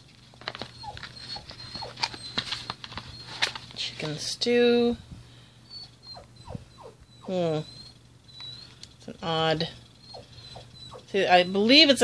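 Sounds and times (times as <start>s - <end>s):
faint squeaks falling in pitch: 5.7s - 8.7s.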